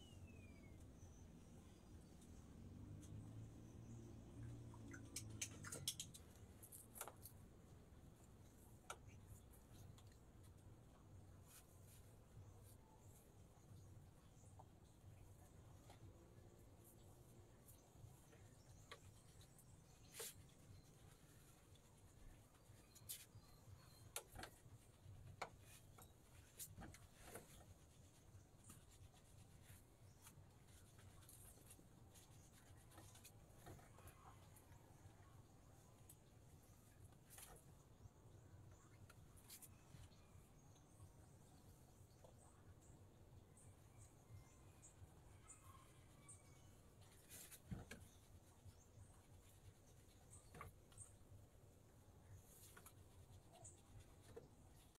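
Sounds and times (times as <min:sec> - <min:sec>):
soft rustles and clicks: 0:04.4 - 0:43.2, 0:46.2 - 0:55.0.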